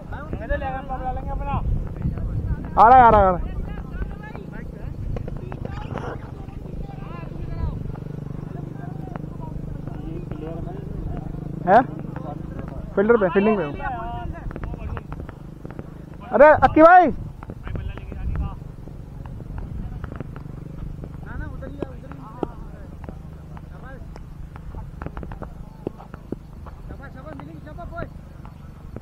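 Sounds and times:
steady low rumble: 0.0 - 29.0
voices calling out: 0.0 - 29.0
distant shouts from players: 2.6 - 28.8.

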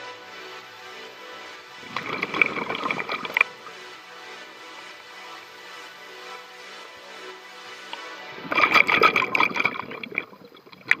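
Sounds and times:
diver's bubbles gurgling underwater: 1.8 - 3.5, 8.4 - 11.0.

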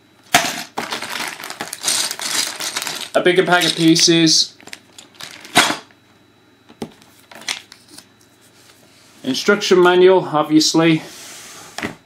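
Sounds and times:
plastic bag crinkling: 0.7 - 5.7.

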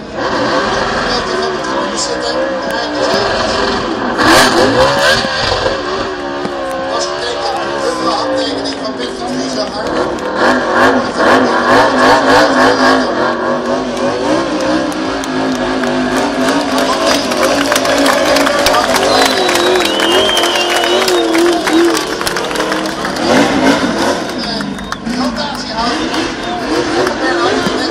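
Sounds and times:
race car engine revving: 0.0 - 27.9
tires spinning: 0.0 - 27.9
speech: 1.0 - 3.4, 6.9 - 10.1, 18.2 - 19.7, 24.2 - 27.9.

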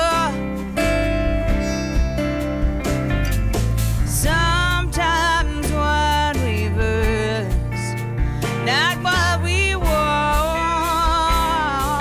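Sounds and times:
person singing: 0.0 - 0.9, 4.1 - 12.0
acoustic guitar strumming: 0.0 - 5.5.

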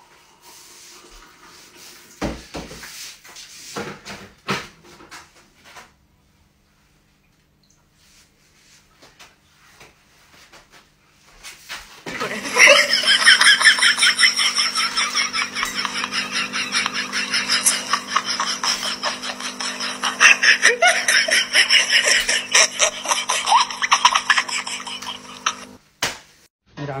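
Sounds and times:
person laughing hard: 12.1 - 25.8
steady hum: 12.1 - 25.8.

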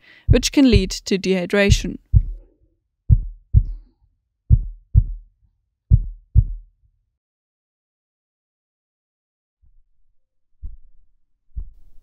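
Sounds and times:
heartbeat double thump: 0.3 - 1.0, 1.7 - 2.5, 3.1 - 3.8, 4.5 - 5.3, 5.9 - 6.7, 11.6 - 11.9.

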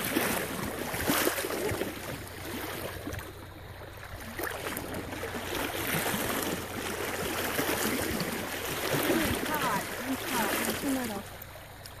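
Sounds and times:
creek water running: 0.0 - 12.0
voices: 9.0 - 11.5.

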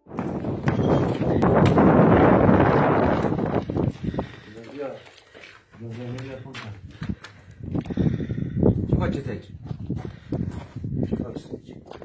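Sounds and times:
wind buffeting microphone: 0.0 - 5.0, 6.2 - 12.0.

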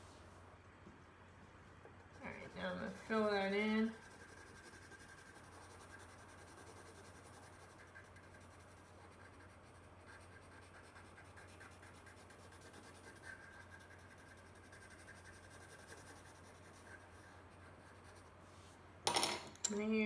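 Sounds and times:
steady low hum: 0.0 - 20.0
colored pencil scratching on paper: 1.8 - 18.4.

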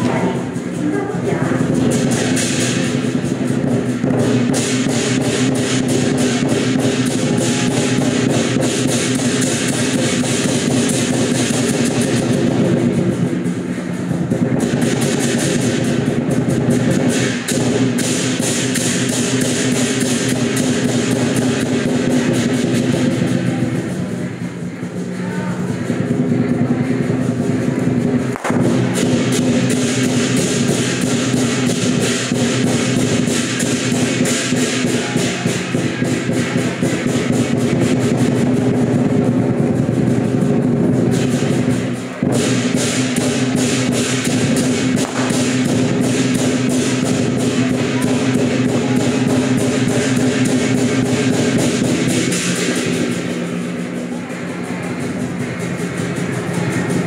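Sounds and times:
drumming and percussion: 0.0 - 57.0.

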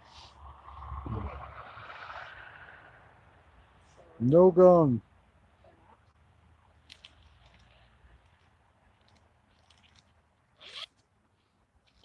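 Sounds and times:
backpack zipper pulled: 10.6 - 11.0.

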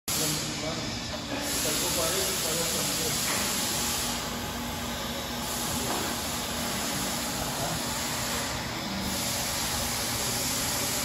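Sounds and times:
electric gear motor humming: 2.2 - 11.0.

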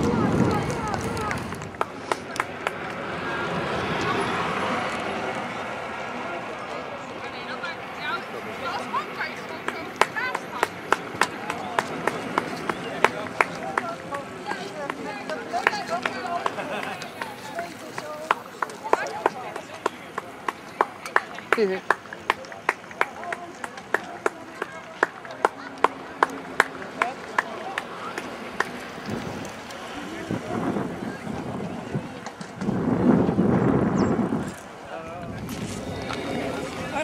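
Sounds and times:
group of people talking: 0.0 - 37.0.

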